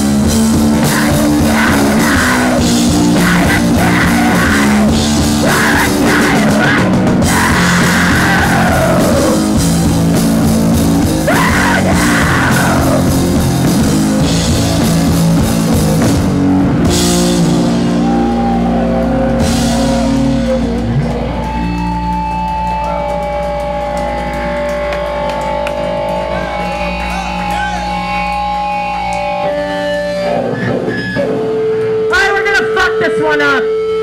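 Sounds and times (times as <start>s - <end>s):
ringing guitar tones: 0.0s - 34.0s
rock band playing loudly: 0.0s - 34.0s
person yelling: 0.9s - 9.4s, 11.2s - 13.1s.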